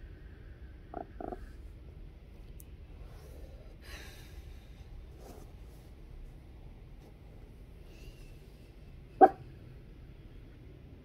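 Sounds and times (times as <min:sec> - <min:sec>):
dog bark: 0:09.2 - 0:09.4.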